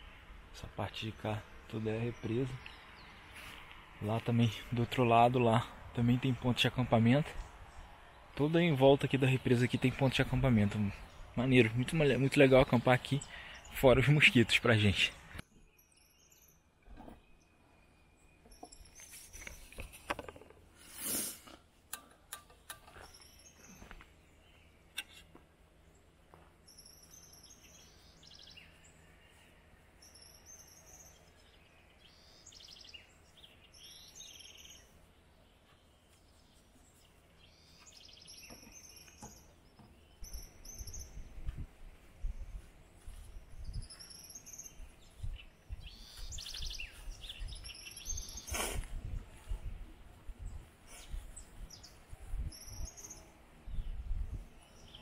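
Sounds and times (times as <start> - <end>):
birds chirping and calling: 8.4 - 20.8, 22.0 - 55.0.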